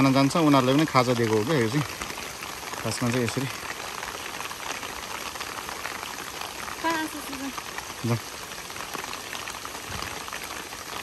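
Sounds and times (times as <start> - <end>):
rushing water: 0.0 - 11.0.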